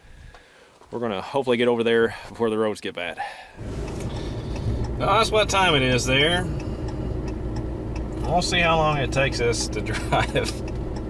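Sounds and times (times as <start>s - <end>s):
pickup truck engine running: 3.6s - 11.0s.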